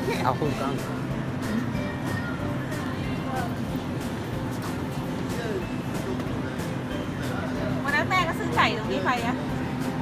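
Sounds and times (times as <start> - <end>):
in-store music: 0.0 - 10.0.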